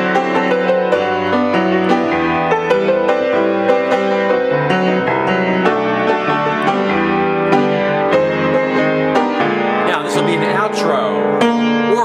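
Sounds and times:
solo jazz piano chords: 0.0 - 12.0.

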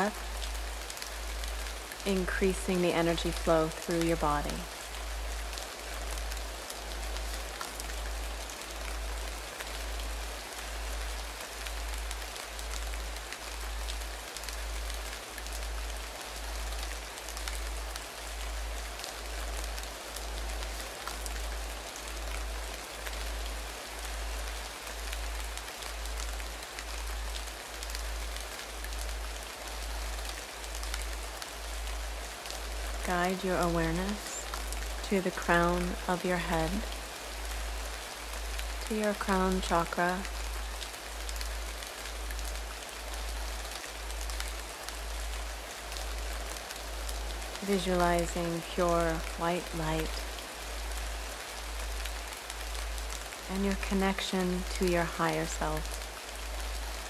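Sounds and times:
steady rain: 0.0 - 57.0.

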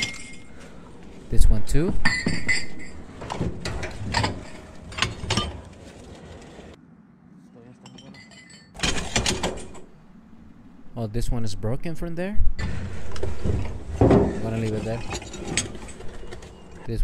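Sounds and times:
ceramic shards clinking: 0.0 - 0.7, 2.0 - 5.5, 7.9 - 9.1.

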